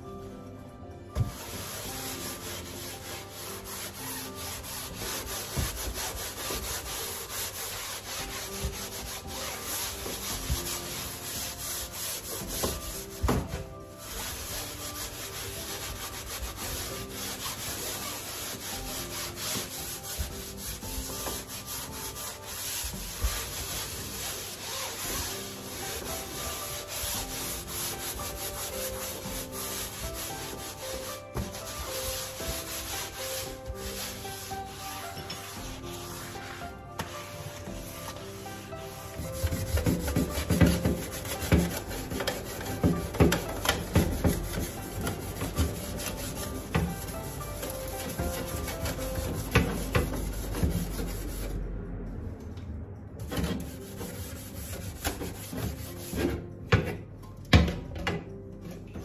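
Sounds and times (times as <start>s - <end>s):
sponge scrubbing metal stovetop: 1.2s - 51.5s, 53.3s - 56.5s.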